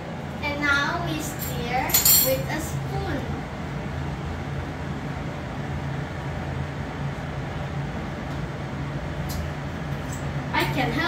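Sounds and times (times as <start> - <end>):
low kitchen hum and hiss: 0.0 - 11.0.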